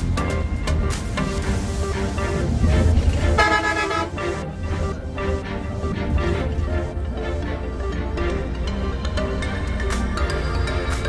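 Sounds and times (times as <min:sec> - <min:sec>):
background music: 0:00.0 - 0:11.0
bus engine rumble: 0:00.0 - 0:11.0
vehicle horn honking: 0:03.3 - 0:04.3.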